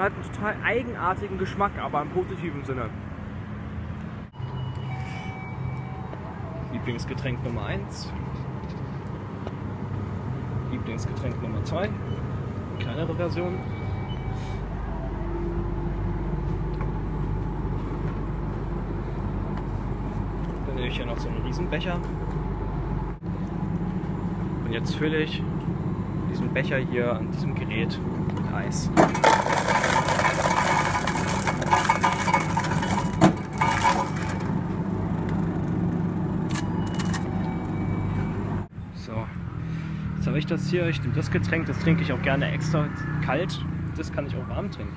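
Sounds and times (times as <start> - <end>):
crushed ice pouring into cup: 29.0 - 34.5.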